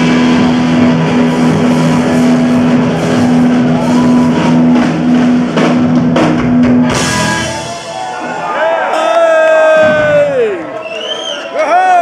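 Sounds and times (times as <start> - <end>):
punk rock band playing live: 0.0 - 8.5.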